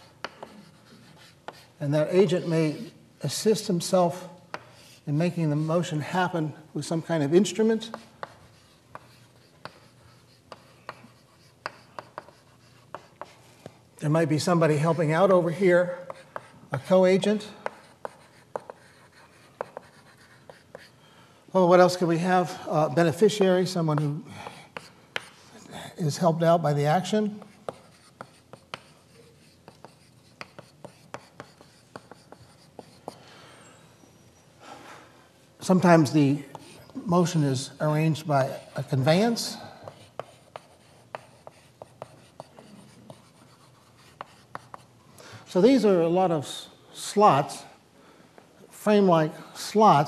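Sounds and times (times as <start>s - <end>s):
chalk tapping on blackboard: 0.0s - 1.8s, 4.5s - 5.0s, 7.8s - 13.8s, 16.0s - 16.9s, 17.6s - 20.9s, 23.2s - 25.4s, 27.2s - 33.2s, 39.8s - 44.9s
chalk scratching: 0.0s - 6.2s, 6.9s - 13.8s, 14.4s - 21.0s, 21.9s - 33.2s, 38.4s - 44.9s.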